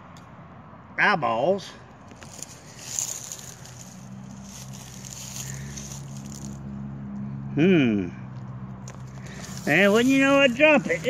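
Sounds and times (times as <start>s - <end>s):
gloved fingers rubbing a coin: 2.2s - 6.6s, 9.0s - 11.0s.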